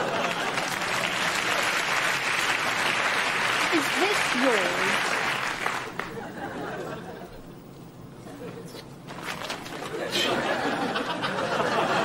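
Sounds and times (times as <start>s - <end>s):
audience laughing and applauding: 0.0s - 7.6s, 9.8s - 12.0s.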